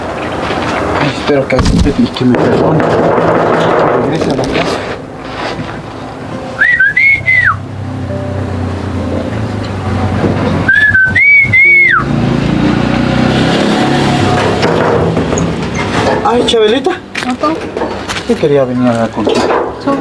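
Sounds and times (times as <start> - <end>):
soft background music: 4.0 - 14.6, 16.2 - 20.0
person whistling a call: 6.6 - 7.6, 10.7 - 12.1.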